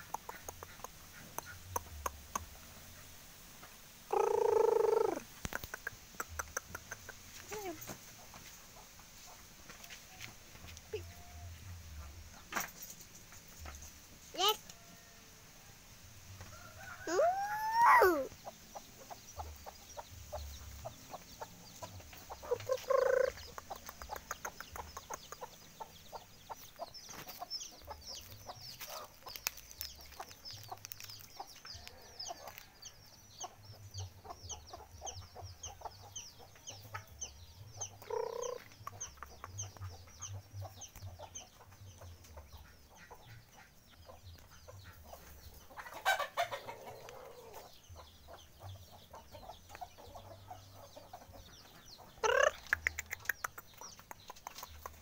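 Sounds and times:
chickens clucking: 0.0 - 14.9, 15.8 - 55.0
high-pitched chirping: 17.1 - 18.4, 22.4 - 25.5, 37.8 - 40.4.

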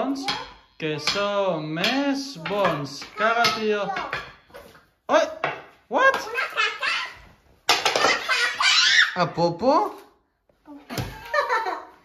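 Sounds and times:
people laughing: 10.9 - 12.0.

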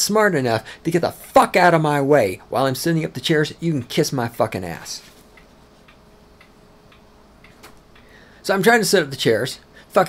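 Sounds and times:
low steady hum: 0.0 - 10.0
faint regular ticking: 2.4 - 8.6.

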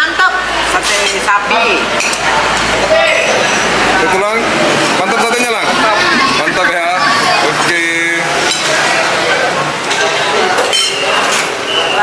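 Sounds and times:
busy dining room background: 0.0 - 12.0
cutlery clinking on plates: 8.4 - 8.9, 9.8 - 11.6.

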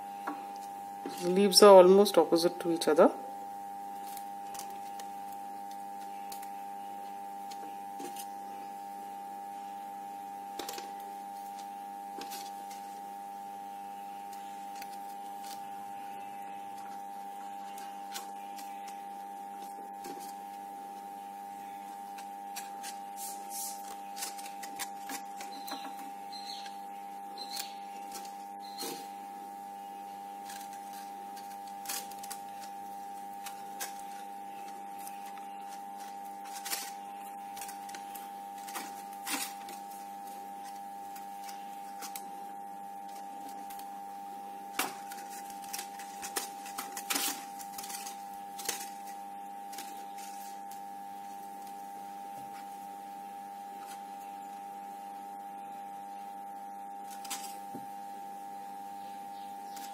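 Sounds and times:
steady hum: 0.0 - 59.9
paper rustling and clicks: 22.1 - 26.1, 30.4 - 32.7, 33.4 - 40.0, 44.7 - 49.1.

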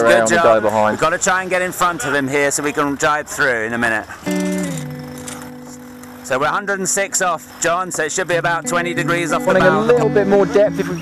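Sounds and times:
held music chord: 8.3 - 11.0.

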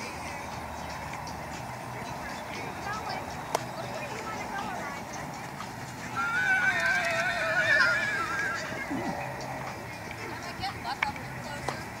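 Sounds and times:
horse whinnying: 6.1 - 9.2.

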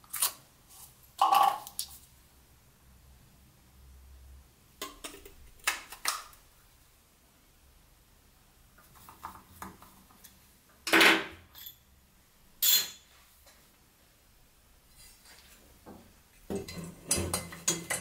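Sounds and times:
metal parts clinking on workbench: 11.5 - 11.8.

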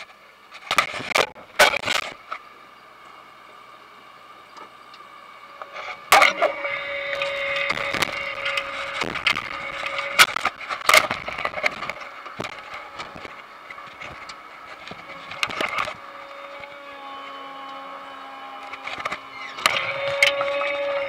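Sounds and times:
harvester machinery whining: 0.7 - 21.0.

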